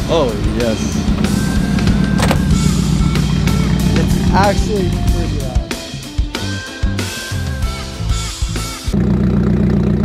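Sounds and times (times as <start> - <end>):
car engine running: 0.0 - 6.0, 7.4 - 10.0
background music: 0.0 - 9.0.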